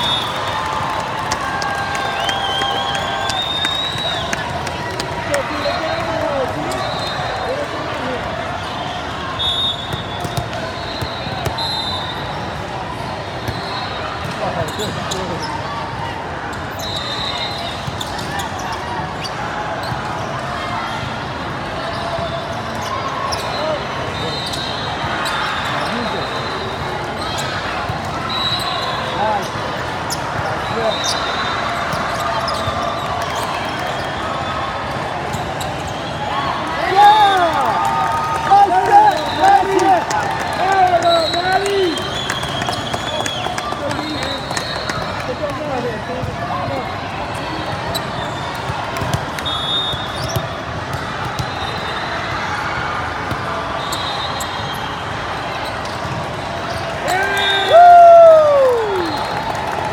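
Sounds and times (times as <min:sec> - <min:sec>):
crowd shouting and cheering: 0:00.0 - 0:59.9
spectators chattering: 0:00.0 - 0:59.9
shoe squeaks: 0:49.4 - 0:50.5.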